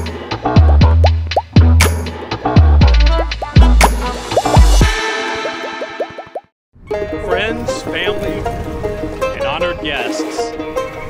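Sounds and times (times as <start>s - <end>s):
electronic music: 2.6s - 6.5s
music track: 2.6s - 11.0s
cartoon bubble popping: 4.3s - 6.5s.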